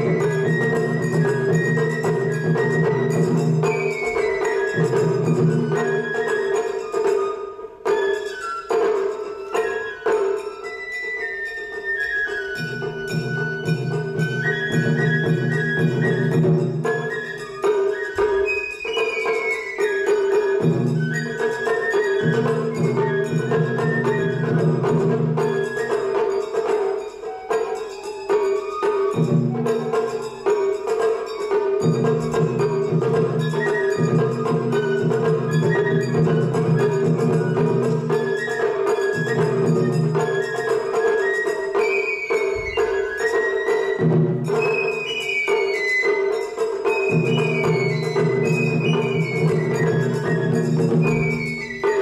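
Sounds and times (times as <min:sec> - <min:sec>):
bamboo flute melody: 0:00.0 - 0:52.0
taiko drums: 0:00.0 - 0:52.0.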